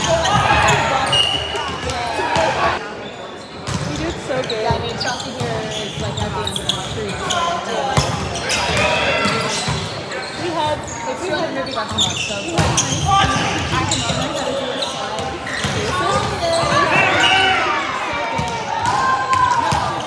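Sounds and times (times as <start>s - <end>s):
players chattering and calling: 0.0s - 20.0s.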